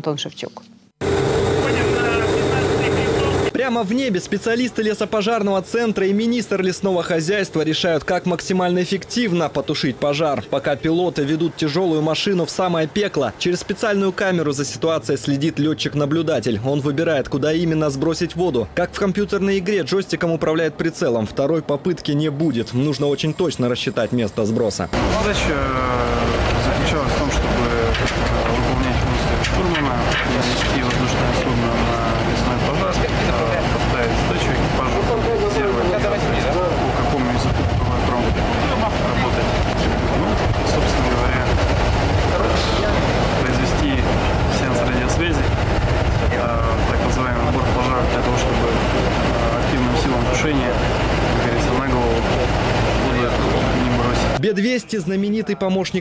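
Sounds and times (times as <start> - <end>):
aircraft engine noise: 1.0 - 6.5, 22.6 - 54.4
man speaking: 1.6 - 41.6, 42.3 - 45.6, 46.3 - 56.0.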